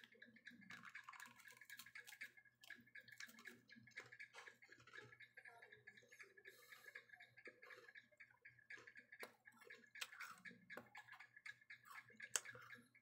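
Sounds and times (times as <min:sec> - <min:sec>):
faint rapid ticking: 0:00.0 - 0:13.0.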